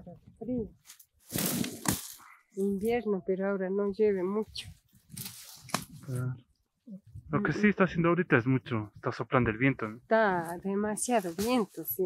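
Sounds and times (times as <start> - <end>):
dry reed stalks rustling: 0.8 - 2.7, 5.1 - 6.1, 11.0 - 12.0
reed stalk snapping: 0.9 - 2.2, 5.1 - 5.9
short vocal sound: 6.9 - 7.8.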